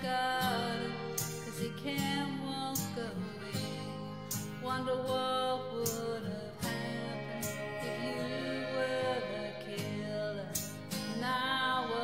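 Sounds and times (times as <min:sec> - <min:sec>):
acoustic guitar ballad: 0:00.0 - 0:12.0
woman singing: 0:00.0 - 0:12.0.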